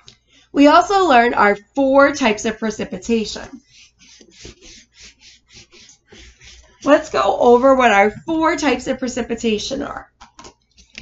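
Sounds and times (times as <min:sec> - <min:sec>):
whiteboard eraser rubbing: 0:03.5 - 0:07.2.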